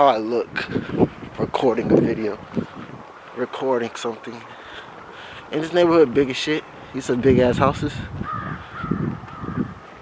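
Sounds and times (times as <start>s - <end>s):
soft footsteps: 0.8s - 8.5s
bird calling faintly: 8.2s - 9.8s.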